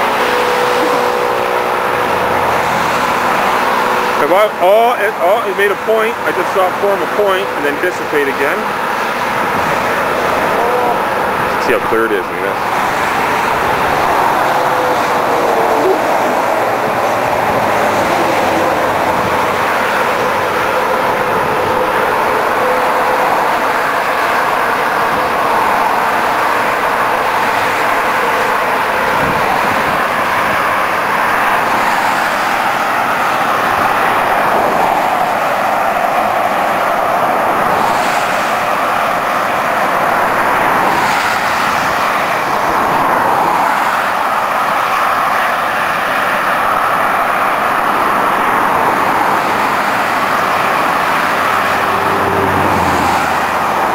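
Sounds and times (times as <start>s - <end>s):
highway traffic rushing: 0.0s - 53.9s.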